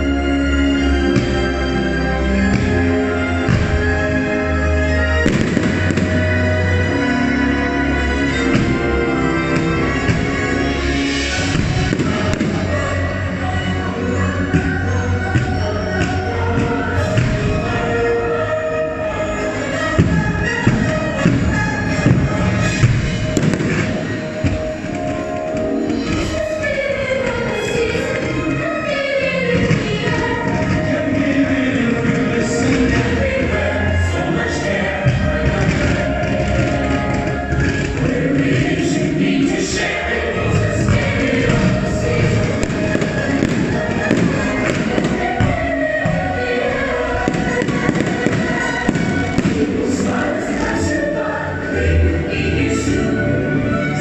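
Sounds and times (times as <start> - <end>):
loud show music: 0.0 - 54.0
fireworks popping and banging: 5.2 - 6.4, 11.4 - 12.9, 20.0 - 26.3, 40.8 - 46.3, 47.2 - 50.7.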